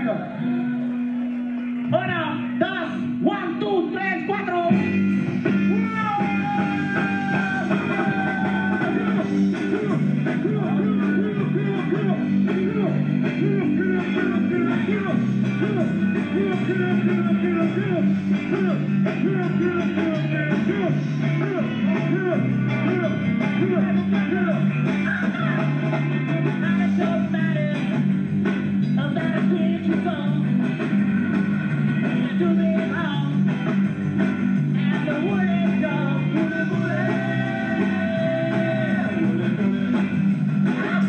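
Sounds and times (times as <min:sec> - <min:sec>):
drums: 0:00.0 - 0:41.0
electric guitar: 0:00.0 - 0:41.0
stepping bass line: 0:01.5 - 0:41.0.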